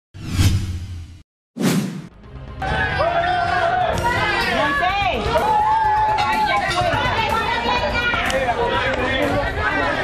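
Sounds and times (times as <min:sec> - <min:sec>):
whoosh sound effects: 0:00.2 - 0:02.1.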